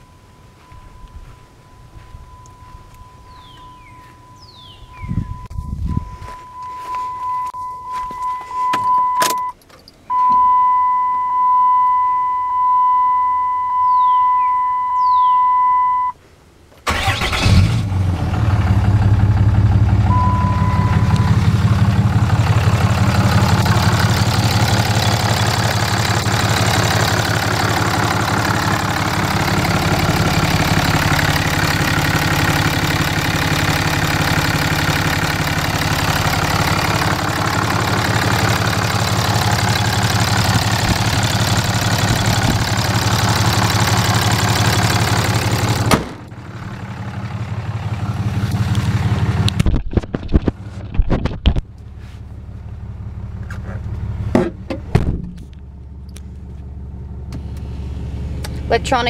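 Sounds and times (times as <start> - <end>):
warning chime dinging: 0.0 - 16.1, 20.0 - 22.2
short beep: 0.0 - 16.2, 20.0 - 21.7
diesel engine starting and idling: 16.8 - 59.0.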